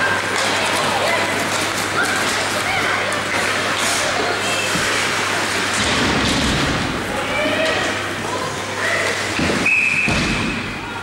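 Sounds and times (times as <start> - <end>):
referee's whistle blast: 9.6 - 10.6.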